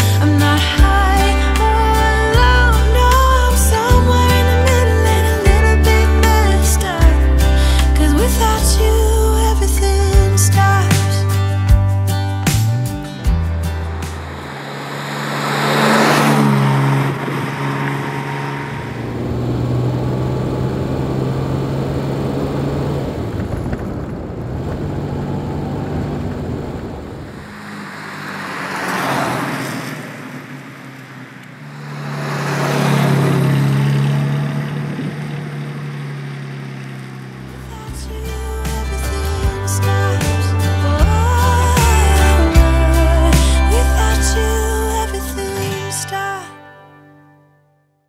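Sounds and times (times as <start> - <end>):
car engine running: 0.0 - 45.5.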